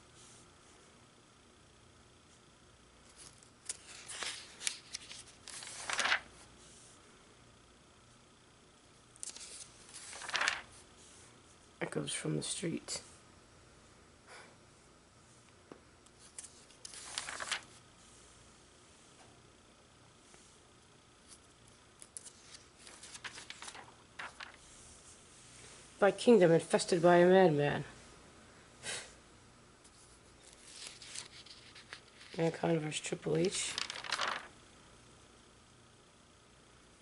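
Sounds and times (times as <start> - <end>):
magazine page rustling: 3.1 - 6.4, 9.2 - 10.8, 16.2 - 17.8, 21.3 - 24.8, 30.4 - 34.6.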